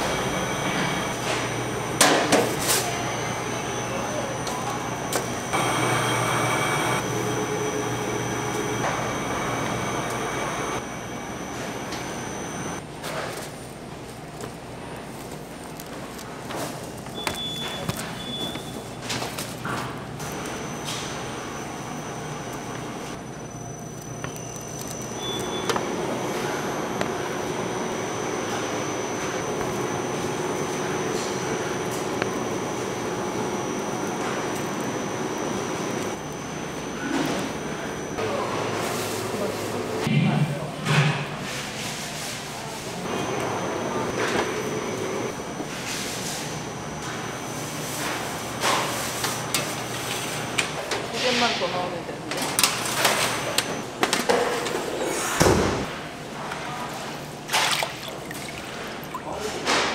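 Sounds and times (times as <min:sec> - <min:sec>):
machine humming with high whine: 0:00.0 - 0:12.8, 0:17.1 - 0:40.6, 0:43.0 - 0:48.7.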